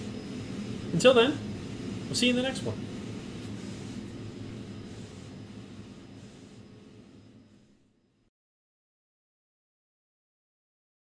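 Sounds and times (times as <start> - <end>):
mechanical hum and whir: 0.0 - 8.3.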